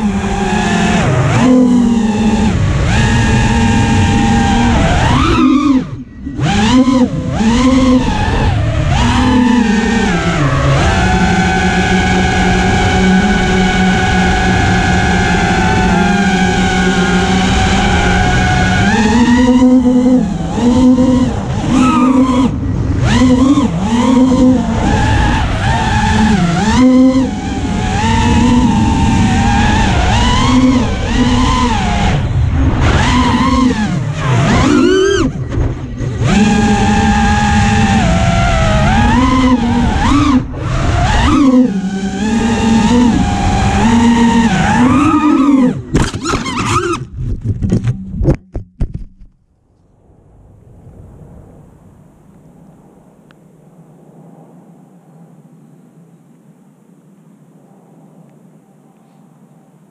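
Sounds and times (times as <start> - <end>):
quadcopter motors whining: 0.0 - 47.1.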